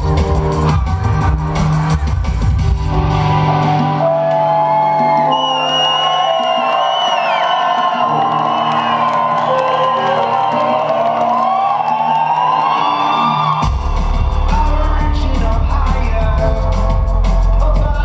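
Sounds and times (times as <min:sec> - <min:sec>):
crowd whooping: 0:00.0 - 0:02.3, 0:03.0 - 0:16.3
heavy bass: 0:00.0 - 0:04.0, 0:13.6 - 0:18.0
live band music through speakers: 0:13.6 - 0:18.0.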